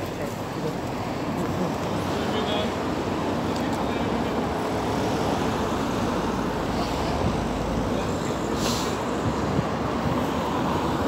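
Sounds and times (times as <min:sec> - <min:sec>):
road traffic noise: 0:00.0 - 0:11.0.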